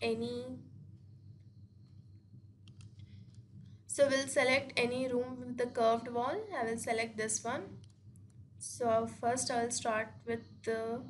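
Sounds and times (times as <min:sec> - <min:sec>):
low background hum: 0:00.0 - 0:11.0
computer mouse clicks: 0:02.6 - 0:03.8, 0:07.8 - 0:08.4.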